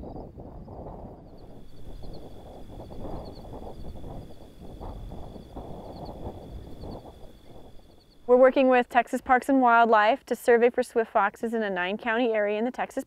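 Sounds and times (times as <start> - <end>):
wind rustling dry grass: 0.0 - 9.1
faint steady high whine: 0.0 - 13.0.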